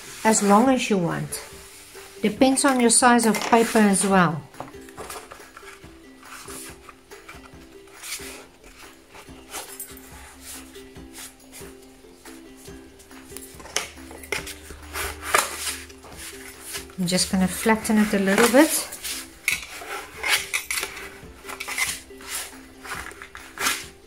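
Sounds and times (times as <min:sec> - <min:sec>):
quiet background music: 0:00.0 - 0:24.0
paper rustling: 0:14.4 - 0:24.0.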